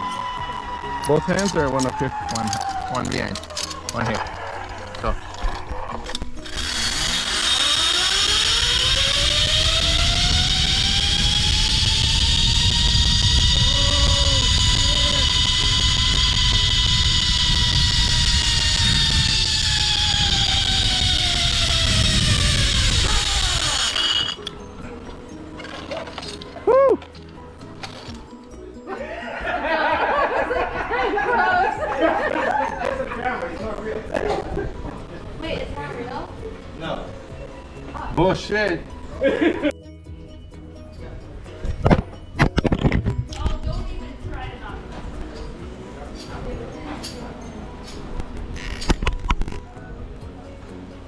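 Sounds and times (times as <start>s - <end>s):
zipline trolley pulleys whining: 0.0s - 28.1s
wind rumbling on microphone: 8.8s - 24.3s.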